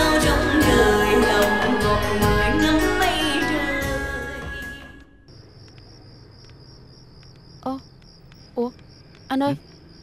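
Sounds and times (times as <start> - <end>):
crickets chirping: 5.2 - 10.0.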